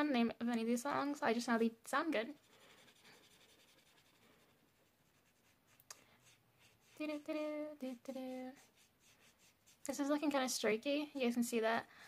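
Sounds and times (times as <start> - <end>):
marker rubbing on paper: 2.3 - 10.3.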